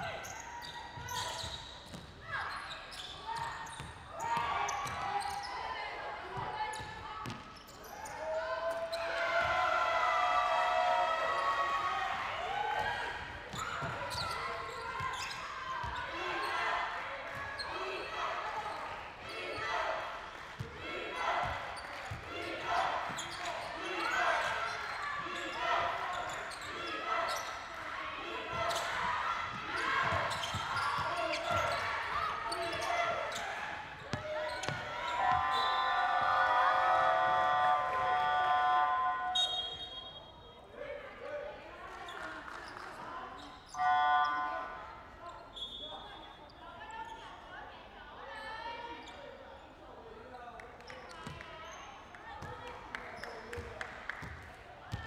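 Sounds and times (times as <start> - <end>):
shoe squeaks: 0.2 - 3.9
players' voices echoing: 3.2 - 47.3.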